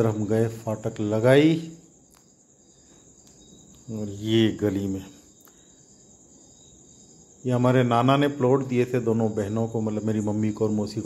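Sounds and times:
insects chirring: 0:00.0 - 0:11.0.

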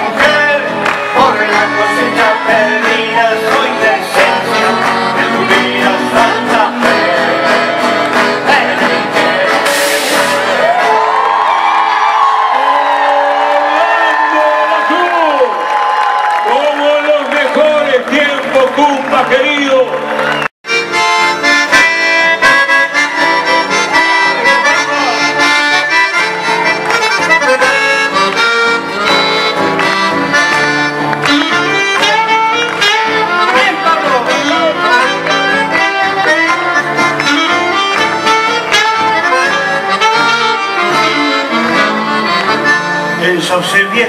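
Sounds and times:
accordion: 0:00.0 - 0:11.0, 0:20.1 - 0:44.0
live folk band: 0:00.0 - 0:13.0, 0:17.6 - 0:44.0.

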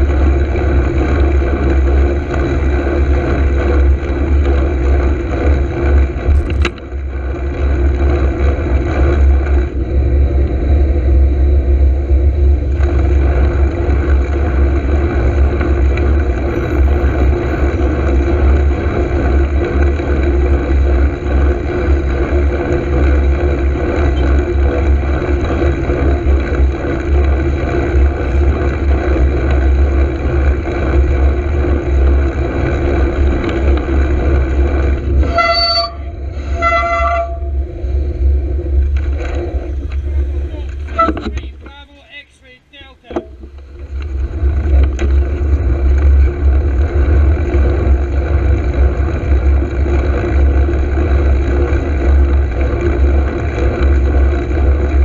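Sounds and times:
wind rumble on microphone: 0:00.0 - 0:41.6, 0:43.4 - 0:55.0
cars passing: 0:00.0 - 0:55.0
road noise: 0:00.0 - 0:55.0.

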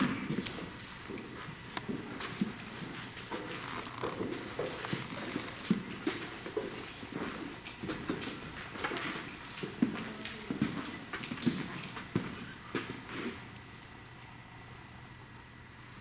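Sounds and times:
footsteps on hard floor: 0:00.0 - 0:13.4.

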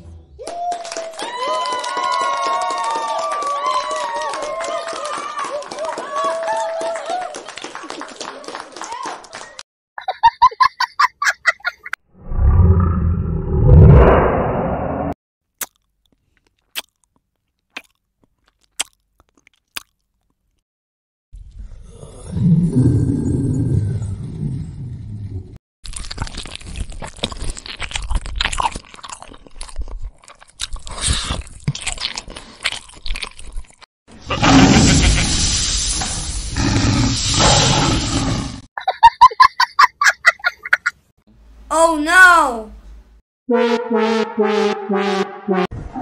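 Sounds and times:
lion chewing and crunching food: 0:25.8 - 0:33.9.

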